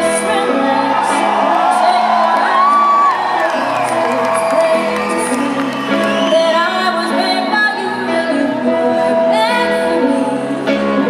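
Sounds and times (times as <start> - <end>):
live band with guitar and singing: 0.0 - 11.0
audience whooping and cheering: 0.1 - 7.4.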